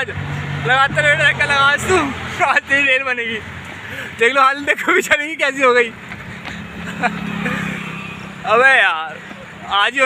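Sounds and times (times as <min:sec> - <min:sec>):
man talking: 0:00.0 - 0:06.0, 0:08.4 - 0:10.0
vehicle engine hum: 0:00.0 - 0:10.0.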